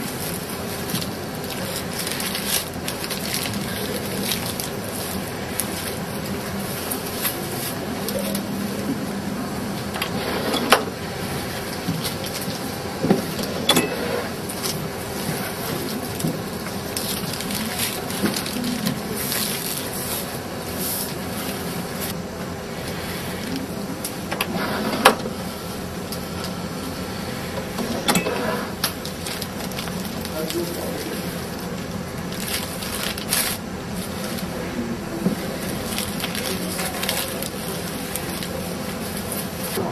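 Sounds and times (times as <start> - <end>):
machine running: 0.0 - 39.9.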